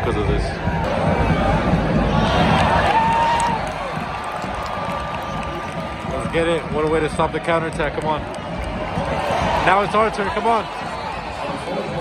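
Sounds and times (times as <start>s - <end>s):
crowd shouting: 0.6s - 6.5s, 8.5s - 12.0s.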